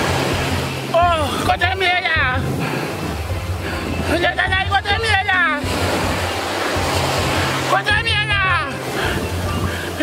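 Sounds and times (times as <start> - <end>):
background music with bass line: 0.0 - 10.0
surf rushing: 0.0 - 10.0
man speaking: 4.1 - 5.7.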